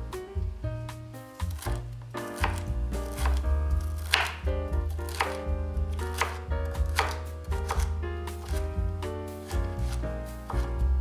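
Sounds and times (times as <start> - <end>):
background music: 0.0 - 11.0
knife chopping on wooden board: 1.4 - 8.8, 9.4 - 10.7.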